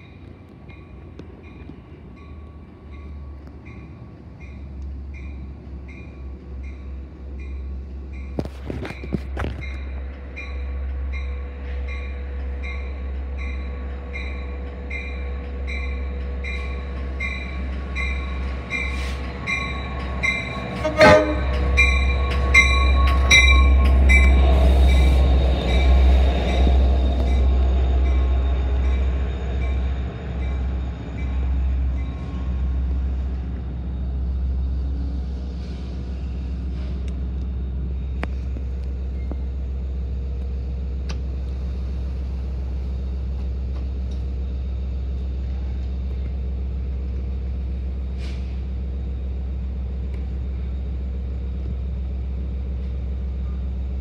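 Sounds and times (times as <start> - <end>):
train bell ringing: 9.0 - 32.3
short horn toot: 20.8 - 21.5.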